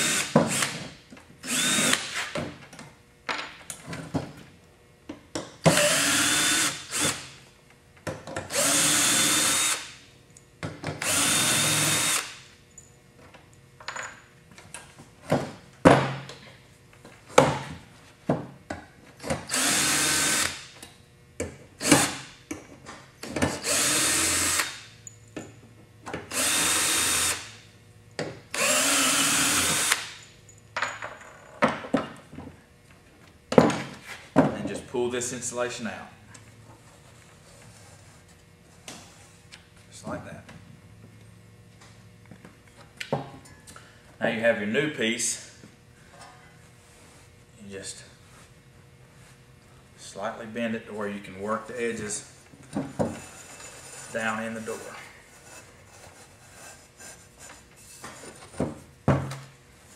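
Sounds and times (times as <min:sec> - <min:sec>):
cordless drill whirring: 0:00.0 - 0:00.8, 0:01.4 - 0:02.1, 0:05.7 - 0:07.2, 0:08.5 - 0:09.9, 0:11.0 - 0:12.4, 0:19.5 - 0:20.6, 0:23.6 - 0:24.8, 0:26.3 - 0:27.5, 0:28.6 - 0:30.0.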